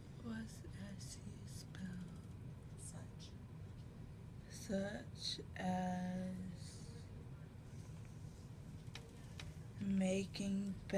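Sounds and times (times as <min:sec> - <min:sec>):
low room hum: 0:00.0 - 0:10.9
woman whispering: 0:00.2 - 0:03.4, 0:04.5 - 0:07.1.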